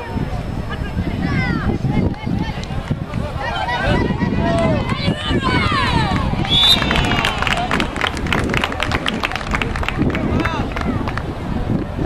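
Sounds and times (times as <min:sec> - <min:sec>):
voices shouting and cheering: 0:00.0 - 0:11.7.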